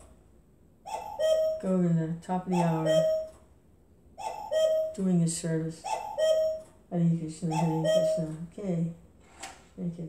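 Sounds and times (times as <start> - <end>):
woman speaking: 1.6 - 3.2, 5.0 - 5.9, 6.9 - 9.0.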